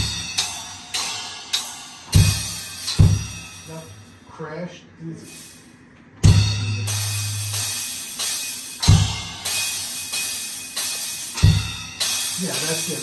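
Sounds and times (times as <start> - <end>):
kick drum and crash cymbal: 0.0 - 4.1, 6.2 - 13.0
low bass note: 6.3 - 7.7.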